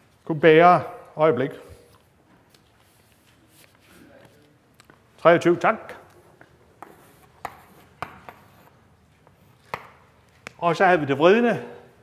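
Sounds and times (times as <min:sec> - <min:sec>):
chalk tapping on a blackboard: 0:06.8 - 0:08.8, 0:09.6 - 0:10.0.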